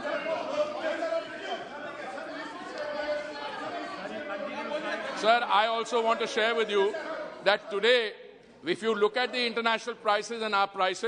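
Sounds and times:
many voices chattering: 0.0s - 11.0s.

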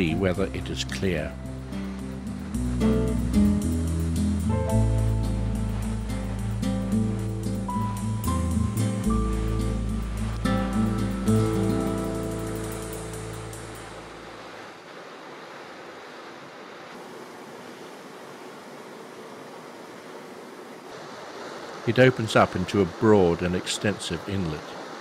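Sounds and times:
background music: 0.0s - 14.4s
rushing water and wind: 0.0s - 25.0s.

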